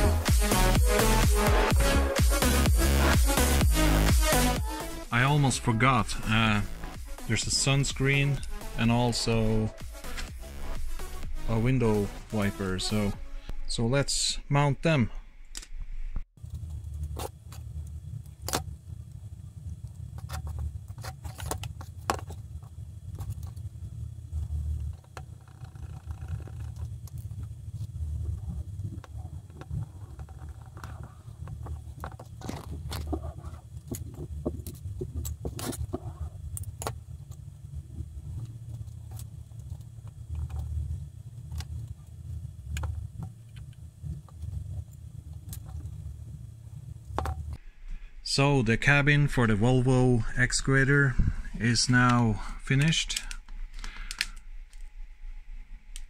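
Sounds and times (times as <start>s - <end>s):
steady low rumble: 0.0s - 21.0s, 21.8s - 25.5s, 26.3s - 56.0s
plastic parts clicking: 52.7s - 54.8s.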